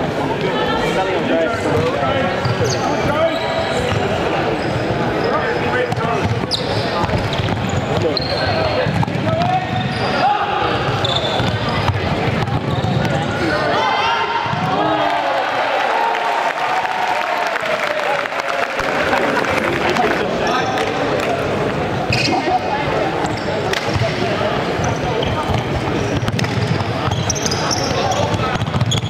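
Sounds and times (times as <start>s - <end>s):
chatter and shouts in echoing hall: 0.0s - 29.0s
shoes squeaking on floor: 2.4s - 8.8s, 9.7s - 10.2s, 10.8s - 12.0s, 22.1s - 22.5s, 24.8s - 29.0s.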